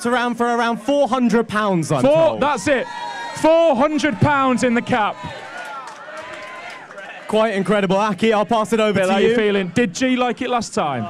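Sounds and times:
person speaking: 8.6s - 10.5s.

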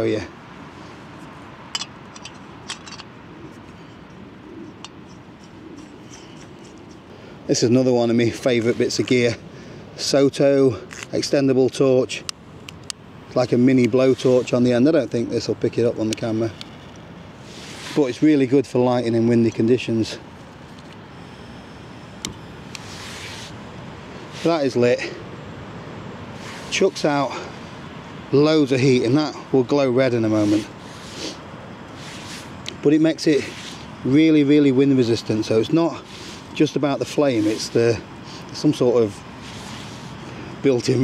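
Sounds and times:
steady low hiss: 0.0s - 41.0s.

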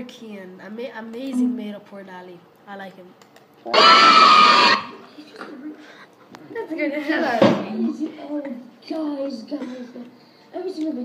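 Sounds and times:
person screaming: 3.7s - 5.0s.

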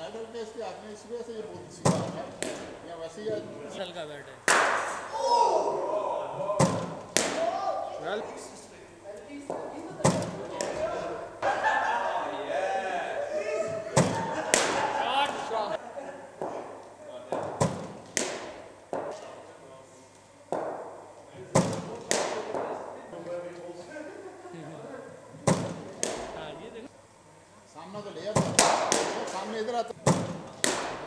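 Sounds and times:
cricket ball knocking on bat: 1.8s - 2.8s, 6.6s - 7.4s, 17.3s - 19.2s, 20.5s - 20.9s, 21.6s - 22.8s, 25.4s - 26.4s, 28.4s - 29.4s, 30.0s - 31.0s.

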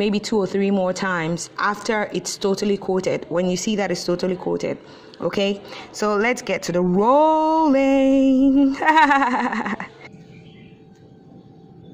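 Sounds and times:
faint steady hum: 0.0s - 11.9s
woman laughing: 8.6s - 10.1s.

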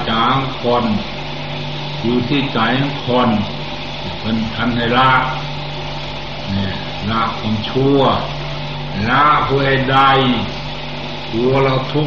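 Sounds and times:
low hum and hiss: 0.0s - 12.0s
man speaking: 6.5s - 8.4s.

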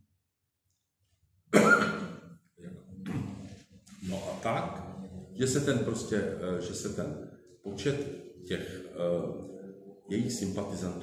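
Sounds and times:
man coughing: 1.5s - 2.3s.

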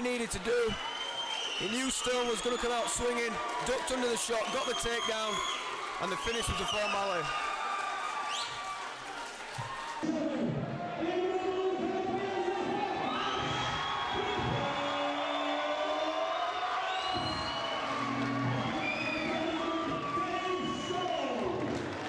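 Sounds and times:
crowd cheering and whooping: 0.3s - 10.2s, 10.9s - 22.0s
music playing: 17.7s - 20.0s.

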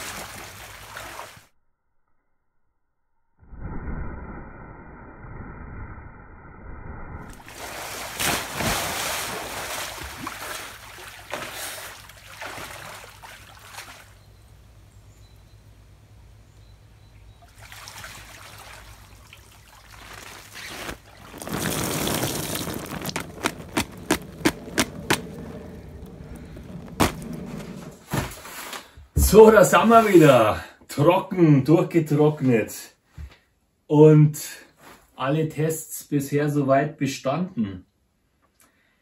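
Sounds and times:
water pouring off a person: 0.0s - 1.4s, 7.4s - 14.0s, 17.6s - 28.0s
water sloshing in a pool: 0.0s - 1.5s, 7.3s - 14.3s, 17.3s - 28.5s.

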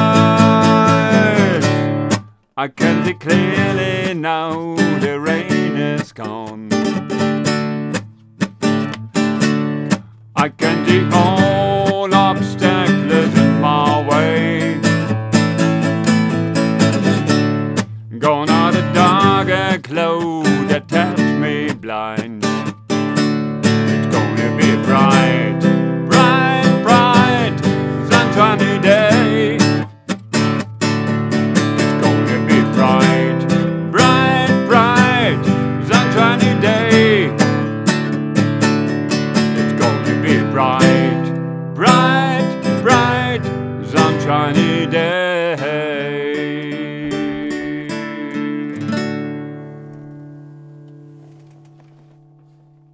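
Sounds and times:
man singing: 0.0s - 7.0s, 10.4s - 15.2s, 18.1s - 22.7s, 23.9s - 29.9s, 31.8s - 37.7s, 39.6s - 49.2s
classical guitar strumming: 0.0s - 52.9s.

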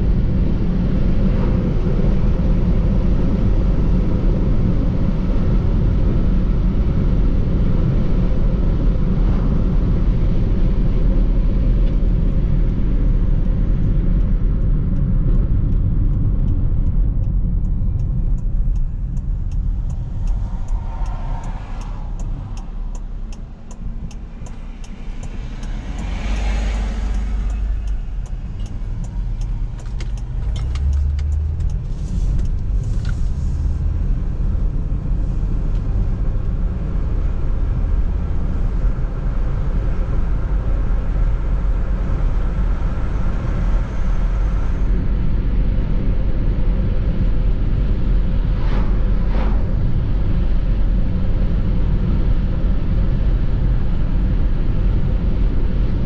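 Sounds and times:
car interior road and engine noise: 0.0s - 56.0s
passing vehicle: 0.0s - 56.0s
turn signal ticking: 11.8s - 44.5s.

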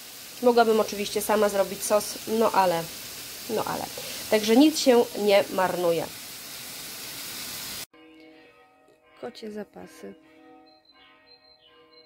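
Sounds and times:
food sizzling in a pan: 0.0s - 7.9s.

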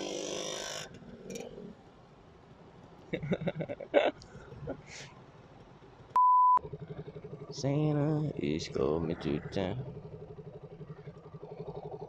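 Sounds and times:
motorcycle engine humming: 0.0s - 12.0s.

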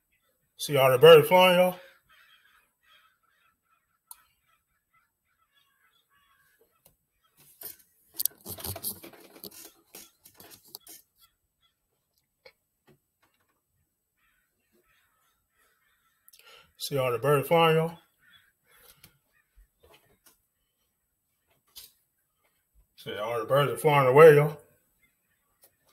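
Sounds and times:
crows calling: 1.3s - 7.5s, 14.1s - 20.0s.

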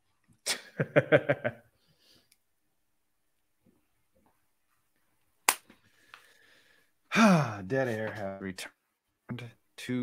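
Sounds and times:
sharp smack: 5.5s - 5.7s.

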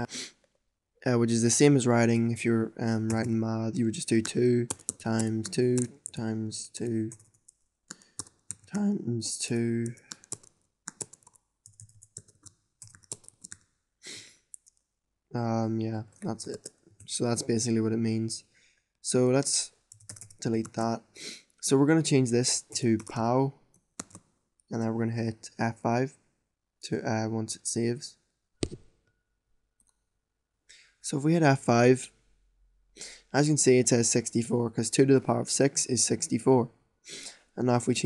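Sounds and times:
keyboard key clicks: 28.6s - 28.8s.

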